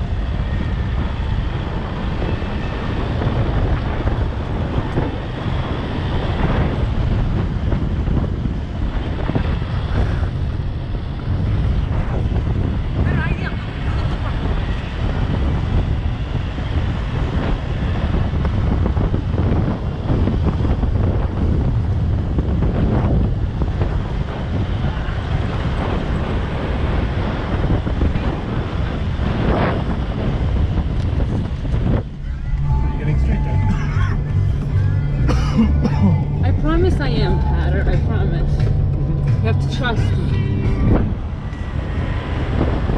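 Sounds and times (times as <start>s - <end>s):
engine and tyres rumbling: 0.0s - 42.9s
low engine drone: 0.0s - 42.9s
wind buffeting the microphone: 0.0s - 42.9s
voices: 13.0s - 15.0s, 32.2s - 41.2s
music: 32.2s - 41.6s.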